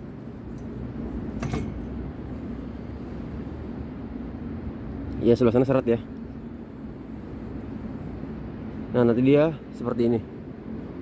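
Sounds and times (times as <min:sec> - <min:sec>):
steady low rumble: 0:00.0 - 0:11.0
metal-on-metal clank: 0:01.3 - 0:01.9.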